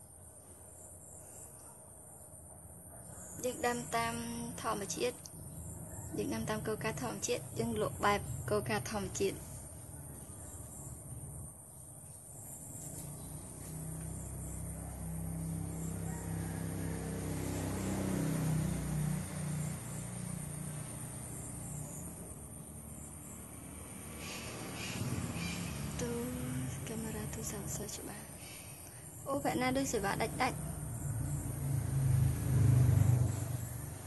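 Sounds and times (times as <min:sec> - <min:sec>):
low engine hum: 0:12.4 - 0:34.0.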